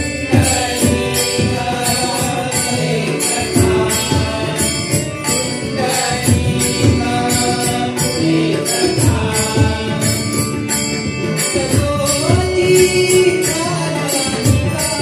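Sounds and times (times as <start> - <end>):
group singing: 0.0 - 15.0
harmonium: 0.0 - 15.0.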